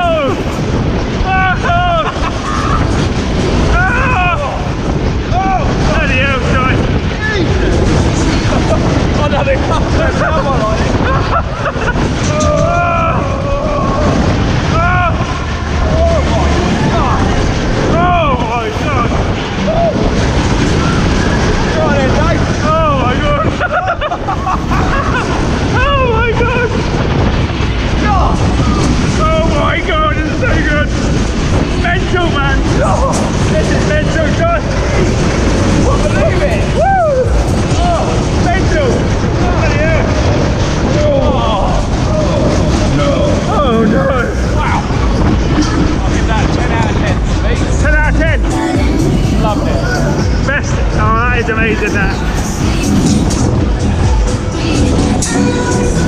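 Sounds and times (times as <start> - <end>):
people shouting and whooping: 0.0 - 6.7, 8.5 - 27.0, 32.0 - 46.1
wind rushing over microphone: 0.0 - 56.0.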